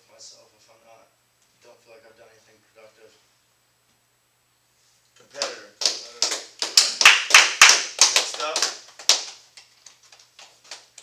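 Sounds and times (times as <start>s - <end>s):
people clapping: 5.3s - 11.0s.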